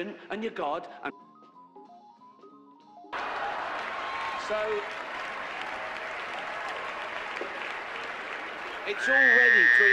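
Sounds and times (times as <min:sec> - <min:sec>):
audience applauding: 0:03.2 - 0:09.9.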